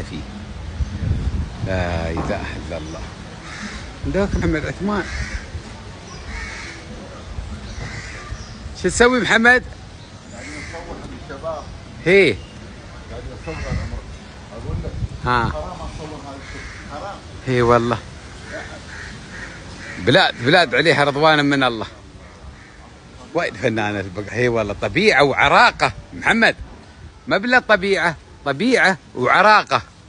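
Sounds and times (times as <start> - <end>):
steady background hiss: 0.0 - 30.0
bird calling: 2.2 - 14.4, 15.8 - 24.3
crow cawing: 3.4 - 7.0, 7.7 - 8.5, 10.3 - 11.1, 16.2 - 21.0, 22.5 - 23.0.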